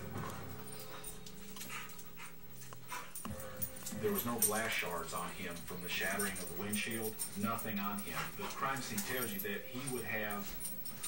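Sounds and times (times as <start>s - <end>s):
dogs scuffling: 0.0s - 11.0s
faint background music: 0.0s - 11.0s
dog breathing: 0.1s - 11.0s.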